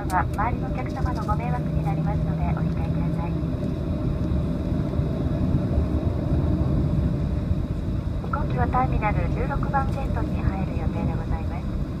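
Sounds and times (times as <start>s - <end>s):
airliner cabin low rumble: 0.0s - 12.0s.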